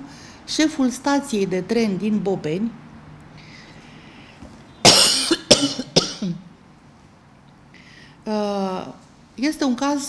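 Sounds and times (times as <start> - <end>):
woman coughing: 4.8 - 6.4.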